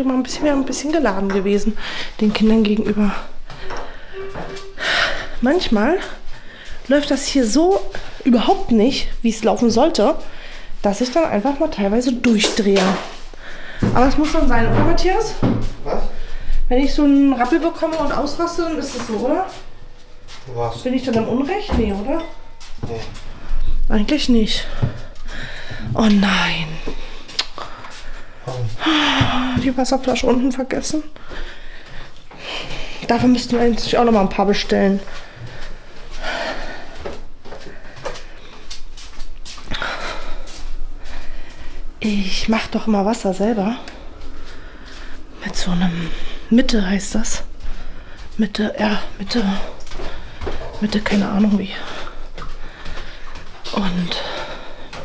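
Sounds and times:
woman's voice: 0.0s - 3.4s, 4.2s - 13.2s, 13.8s - 15.6s, 16.7s - 19.7s, 20.8s - 22.5s, 23.8s - 25.0s, 25.8s - 27.1s, 28.8s - 31.2s, 32.5s - 35.2s, 42.0s - 44.1s, 45.4s - 47.6s, 48.3s - 50.0s, 50.6s - 52.2s, 53.6s - 54.8s
woman sighing: 28.8s - 29.6s.

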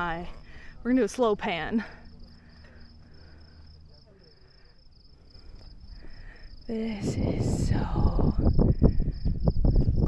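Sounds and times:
faint low rumble: 0.0s - 10.0s
insects trilling: 0.0s - 10.0s.

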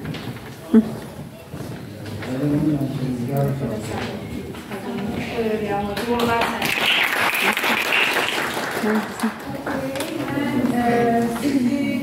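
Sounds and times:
indistinct talking in a hall: 0.0s - 12.0s
pitched voices: 8.8s - 12.0s.

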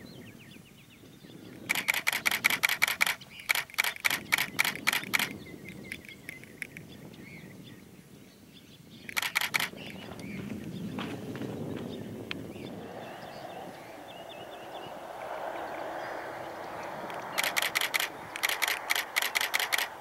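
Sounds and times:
camera shutter clicking: 1.7s - 6.8s, 9.1s - 10.0s, 17.1s - 20.0s.

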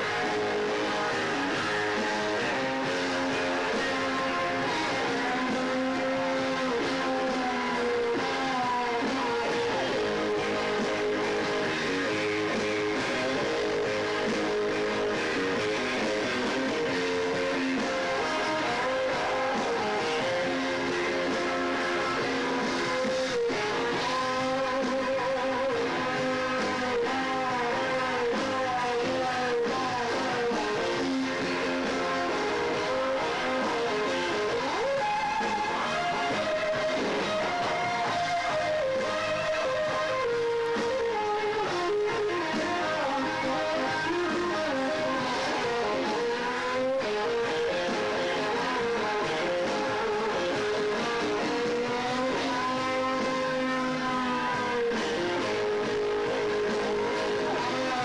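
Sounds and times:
band backing: 0.0s - 58.0s
electric guitar lead: 0.0s - 58.0s.

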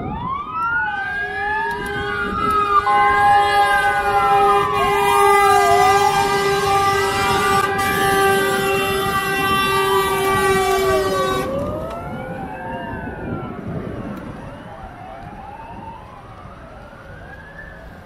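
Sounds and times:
fire engine sirens wailing: 0.0s - 18.0s
long horn blast: 1.3s - 12.0s.

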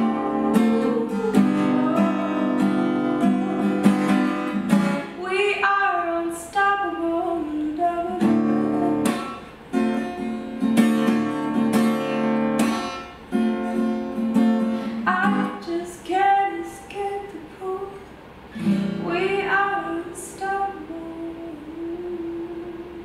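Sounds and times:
woman singing: 0.0s - 12.3s, 15.0s - 18.1s, 19.0s - 23.0s
acoustic guitar strumming chords: 0.0s - 23.0s.

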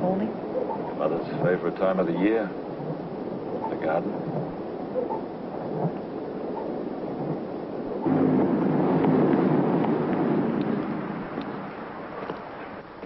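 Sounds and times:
low rumble: 0.0s - 13.0s
rain falling: 0.0s - 13.0s.

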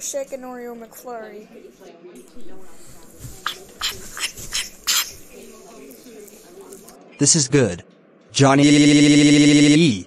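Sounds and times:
cartoon eating mouth sounds: 3.4s - 5.2s.

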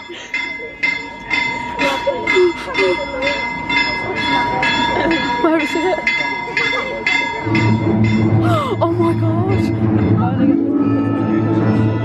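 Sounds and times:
steam train chuffing: 0.0s - 10.4s.

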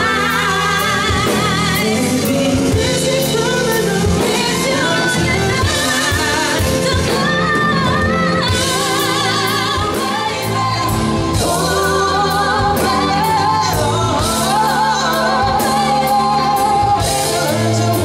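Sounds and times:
band playing: 0.0s - 18.0s
man and woman singing: 0.0s - 18.0s.

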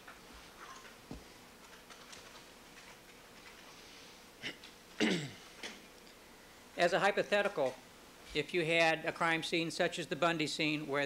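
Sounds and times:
person clearing throat: 4.4s - 5.5s.

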